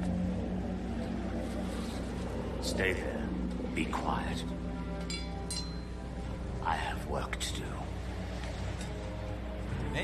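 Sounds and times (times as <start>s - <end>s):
deep held drone tone: 0.0s - 10.0s
low hum: 0.0s - 10.0s.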